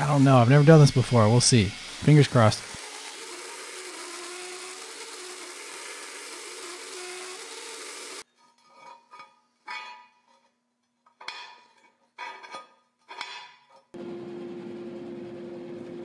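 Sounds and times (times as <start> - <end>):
belt grinder grinding steel: 0.0 - 8.3.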